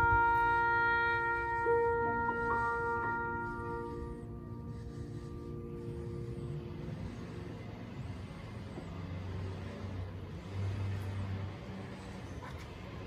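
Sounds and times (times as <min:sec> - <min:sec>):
oboe and piano chord: 0:00.0 - 0:07.0
motor vehicle engine rumble: 0:00.0 - 0:13.0.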